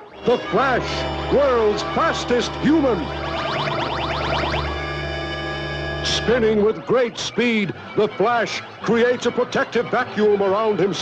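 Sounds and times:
electronic rising sweeps: 0.0 - 6.6
held electronic tone: 0.0 - 8.1.

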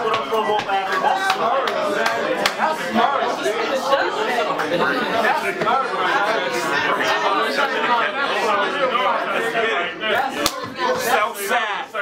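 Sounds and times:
crowd of men chattering: 0.0 - 12.0.

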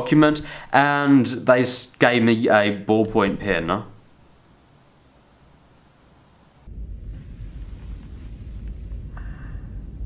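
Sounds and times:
faint hiss: 0.0 - 10.0
steady low rumble: 6.6 - 10.0.

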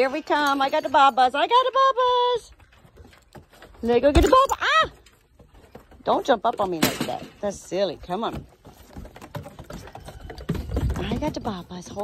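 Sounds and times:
hooves clattering on wooden boards: 0.0 - 12.0.

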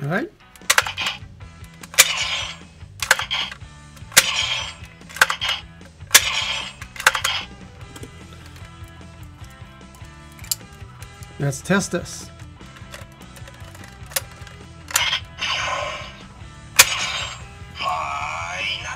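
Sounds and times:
click: 0.5 - 2.4
toy blaster gunshot effect: 0.6 - 1.2, 1.9 - 7.5, 14.2 - 16.2, 16.8 - 17.5.

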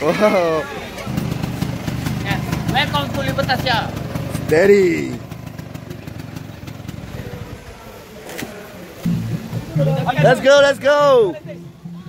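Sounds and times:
small motorcycle engine idling: 0.6 - 8.2.

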